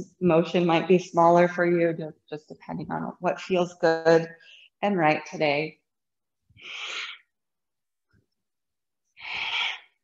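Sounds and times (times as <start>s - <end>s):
woman breathing forcefully: 9.2s - 10.0s.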